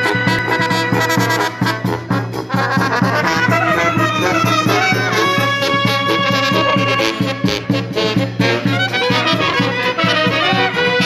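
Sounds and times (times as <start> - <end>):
bass drum and cymbal beat: 0.0 - 11.0
brass melody: 0.0 - 11.0.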